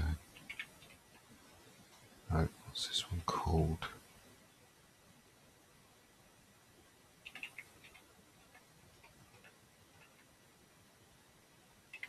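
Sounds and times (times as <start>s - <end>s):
keyboard keystrokes: 0.4s - 1.0s, 7.2s - 10.3s.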